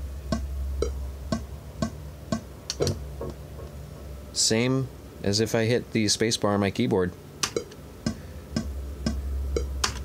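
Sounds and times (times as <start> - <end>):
steady drum beat: 0.2 - 3.3, 7.4 - 10.0
low bass line: 7.6 - 10.0.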